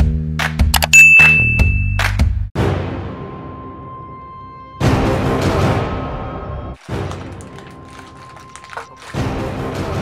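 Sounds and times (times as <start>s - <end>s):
notification bell ding: 0.9s - 2.1s.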